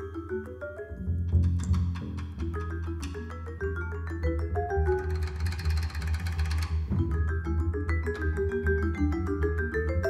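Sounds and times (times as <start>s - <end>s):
double bass: 0.0s - 10.0s
fast drum roll: 5.0s - 7.2s.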